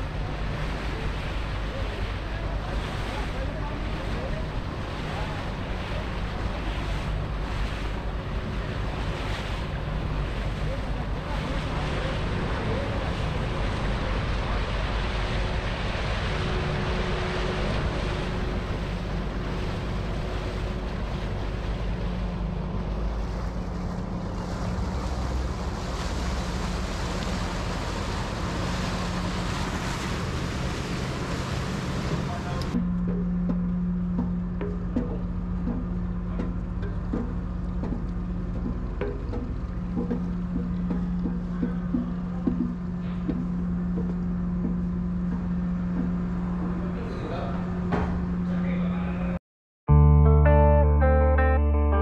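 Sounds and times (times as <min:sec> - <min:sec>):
water rushing along hull: 0:00.0 - 0:49.4
low engine drone: 0:00.0 - 0:52.0.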